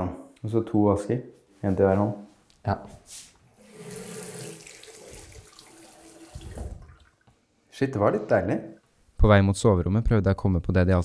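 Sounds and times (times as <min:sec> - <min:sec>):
tap water running into sink: 0:03.6 - 0:07.3.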